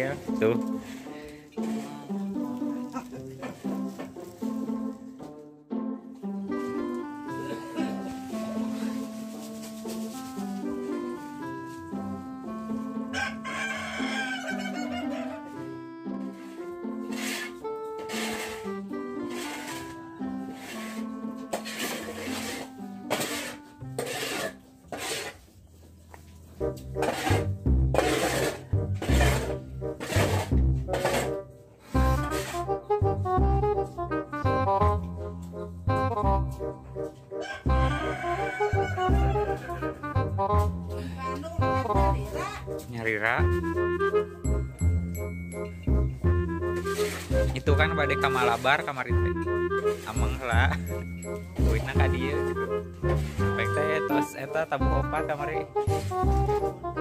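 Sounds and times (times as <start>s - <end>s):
background music melody: 0.0s - 57.0s
rooster crowing: 13.1s - 15.5s, 37.4s - 40.0s.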